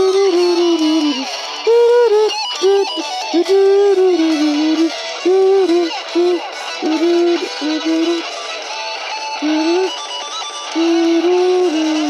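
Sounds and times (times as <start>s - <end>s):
person singing: 0.0s - 8.4s, 9.4s - 10.0s, 10.7s - 12.0s
karaoke backing track: 0.0s - 12.0s.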